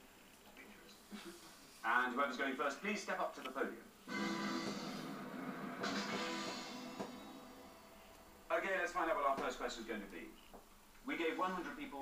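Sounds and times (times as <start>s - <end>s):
quiz show music sting: 4.1s - 8.0s.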